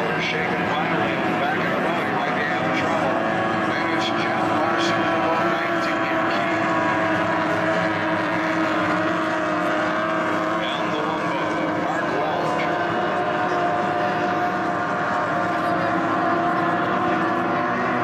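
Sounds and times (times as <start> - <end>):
race boat engines droning: 0.0 - 18.0.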